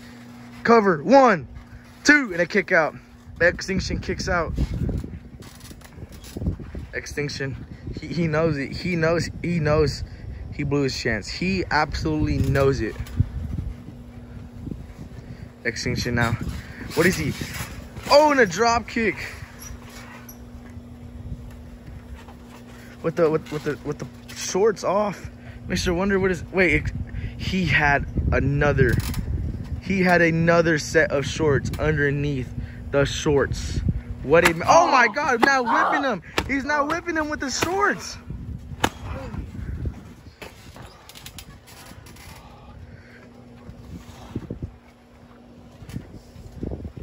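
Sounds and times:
low rumbling noise: 0.0 - 47.0
steady low hum: 0.0 - 47.0.

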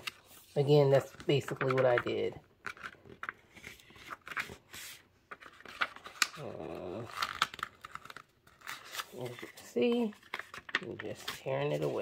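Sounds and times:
paper rustling and clicking: 0.0 - 6.4, 7.1 - 12.0.

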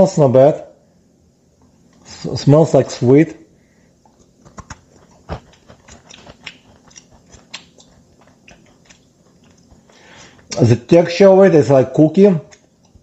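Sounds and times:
crunchy bar being bitten and chewed: 4.1 - 10.6.

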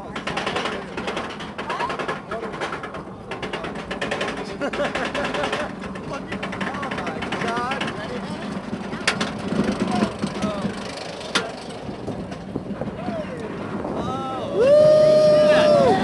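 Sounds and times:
sharp track clacks: 0.0 - 13.9
roller coaster rushing down track: 0.0 - 16.0
lift chain clicking: 0.1 - 12.4
riders yelling: 14.3 - 16.0.

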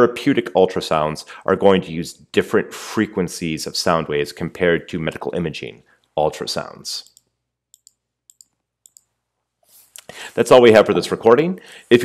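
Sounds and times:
computer mouse clicks: 7.0 - 9.1.

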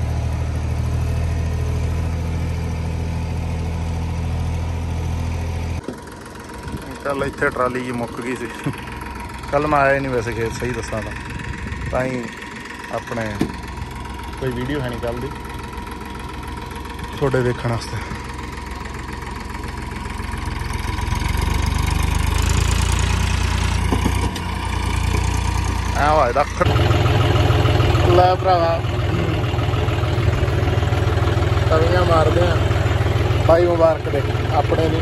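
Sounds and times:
tractor diesel engine idling: 0.0 - 35.0.

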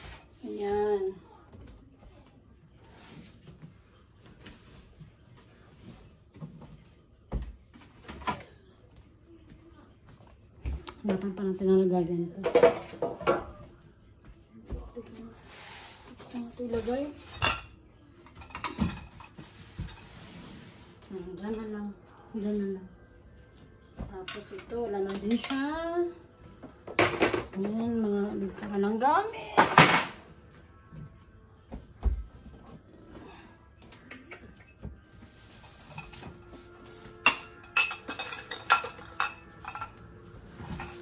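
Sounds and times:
knocks and clinks of household items: 12.3 - 13.7, 16.2 - 20.2, 23.9 - 30.4, 33.9 - 41.0.

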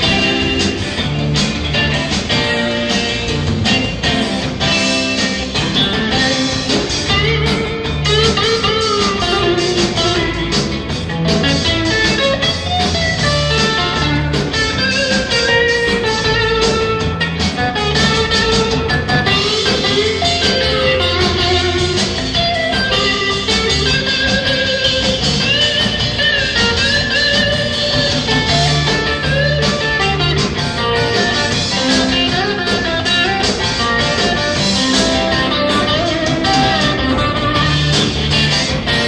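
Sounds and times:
bass guitar: 0.0 - 39.0
drums: 0.0 - 39.0
electric guitar solo: 0.0 - 39.0.

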